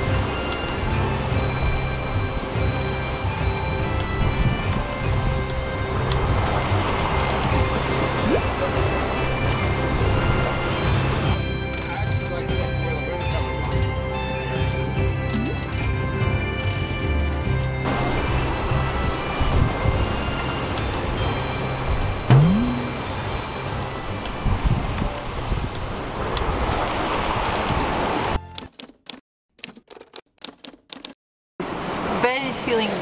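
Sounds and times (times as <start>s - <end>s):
wind and sea rushing: 0.0s - 11.4s, 17.9s - 28.4s, 31.7s - 32.9s
background music: 0.0s - 24.2s.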